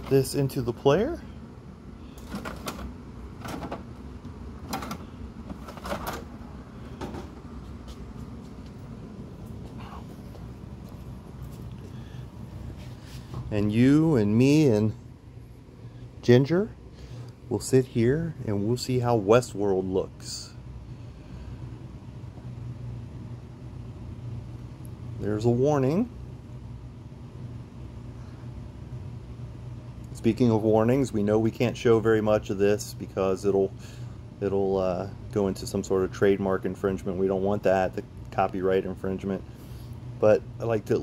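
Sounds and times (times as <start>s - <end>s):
low electronic hum with hiss: 0.0s - 41.0s
disc caddy clunking and sliding: 2.2s - 3.9s, 4.6s - 6.3s.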